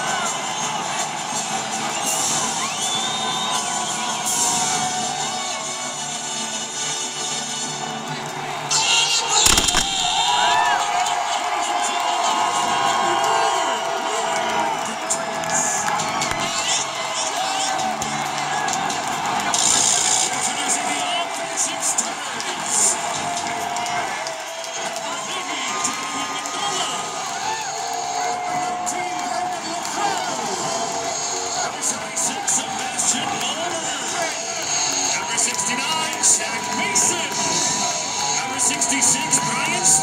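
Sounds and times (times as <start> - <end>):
stadium crowd cheering: 0.0 - 40.0.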